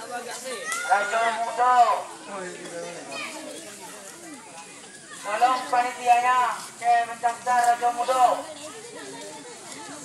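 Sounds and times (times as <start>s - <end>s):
chatter of children and adults: 0.0s - 10.0s.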